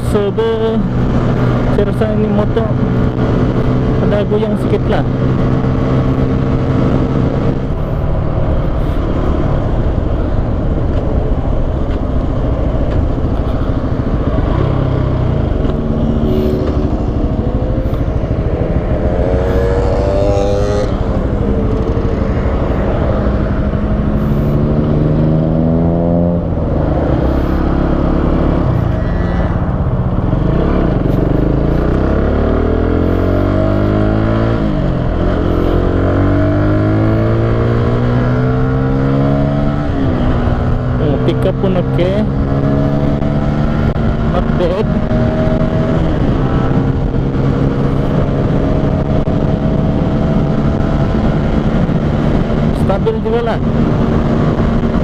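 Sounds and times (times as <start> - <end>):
motorcycle engine accelerating: 0.0 - 55.0
wind and road noise: 0.0 - 55.0.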